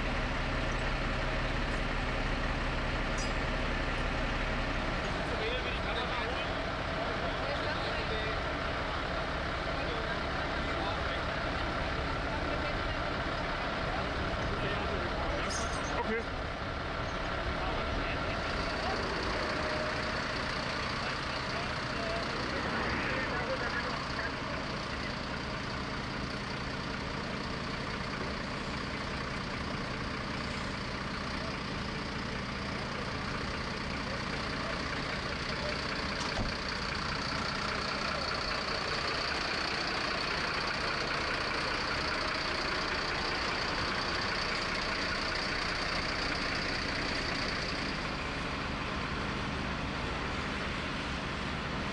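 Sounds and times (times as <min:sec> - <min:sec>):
diesel engines idling: 0:00.0 - 0:51.9.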